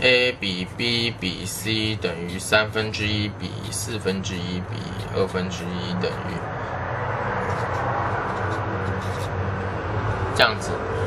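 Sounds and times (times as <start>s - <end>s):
steady rushing noise: 6.2s - 11.0s.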